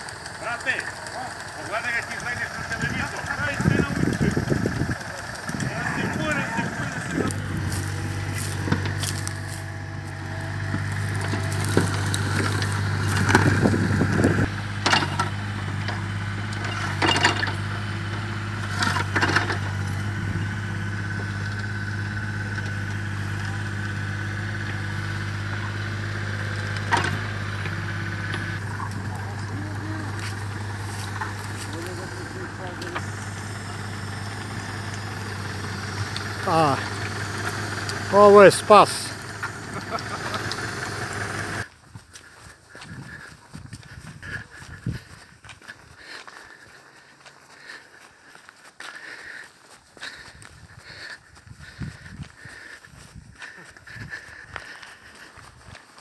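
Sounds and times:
tractor diesel engine idling: 0.0s - 41.7s.

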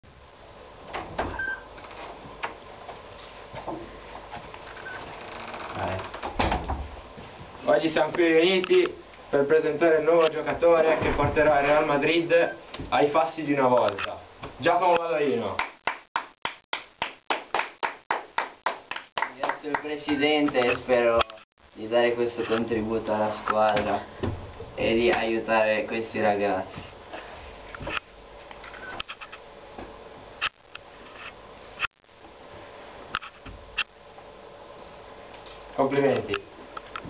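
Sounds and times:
footsteps in small room: 6.9s - 7.6s
hand clapping: 15.5s - 20.2s.

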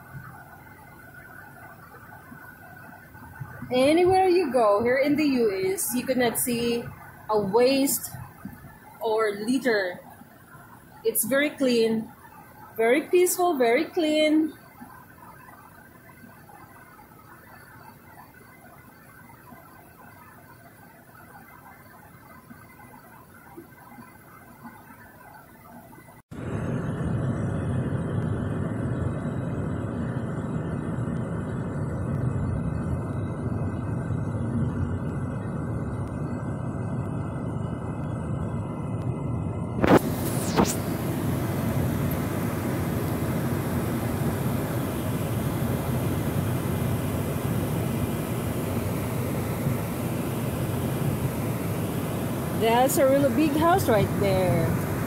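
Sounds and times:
road and engine noise in car: 0.0s - 11.5s, 12.1s - 55.0s.

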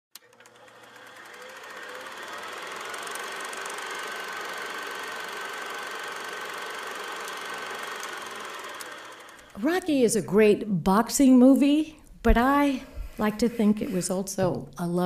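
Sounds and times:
mechanical whirring: 0.2s - 10.0s.

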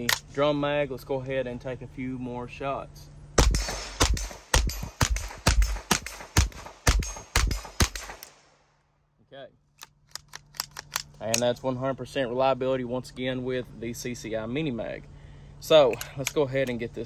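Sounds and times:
pistol shots: 3.4s - 8.6s.

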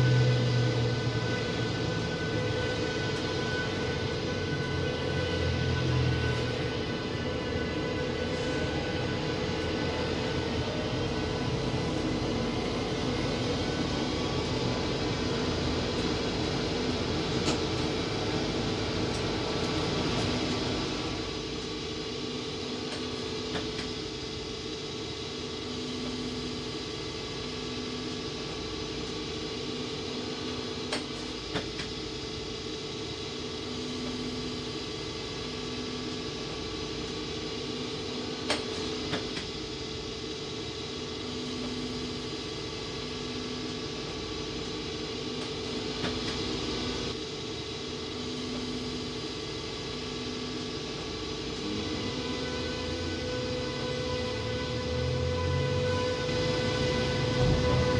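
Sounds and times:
electric train rumbling: 0.0s - 57.9s.

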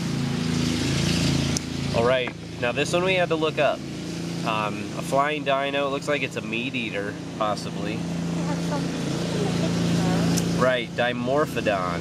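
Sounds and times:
lawn mower engine running: 0.0s - 12.0s.

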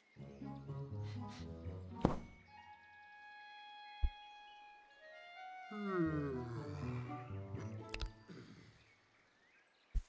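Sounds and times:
film score: 0.0s - 9.0s
sharp loud thunk: 2.0s - 2.3s.

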